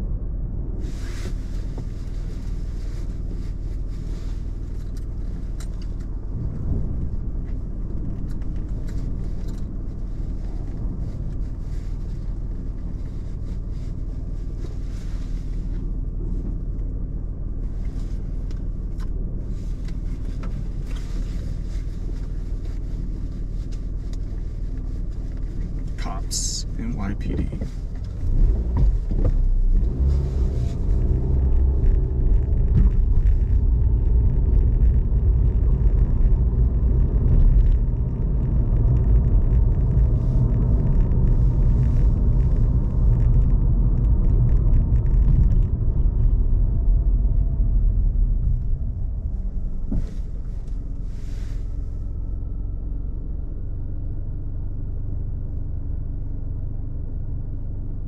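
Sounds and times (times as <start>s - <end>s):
car engine and road noise: 0.0s - 58.0s.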